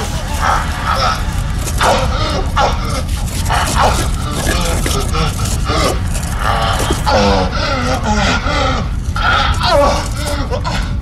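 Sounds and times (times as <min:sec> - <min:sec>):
heavy low band drone: 0:00.0 - 0:11.0.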